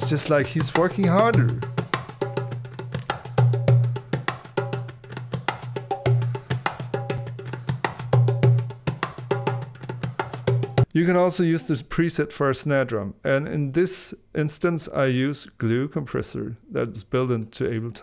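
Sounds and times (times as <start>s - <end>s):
clicking hand percussion hits: 0.0s - 10.9s.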